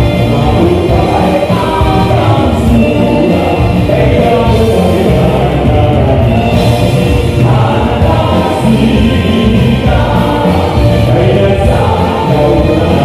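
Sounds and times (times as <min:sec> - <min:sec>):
live band playing folk dance music: 0:00.0 - 0:13.0.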